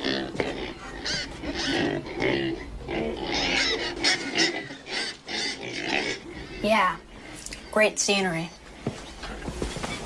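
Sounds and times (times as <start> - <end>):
pigs oinking: 0.0 - 7.7.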